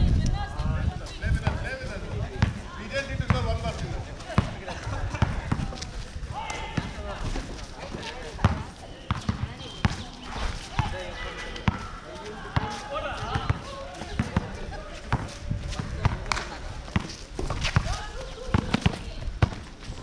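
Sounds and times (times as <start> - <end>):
people talking: 0.0 - 20.0
basketball bouncing on hard court: 8.4 - 10.1, 16.9 - 19.6.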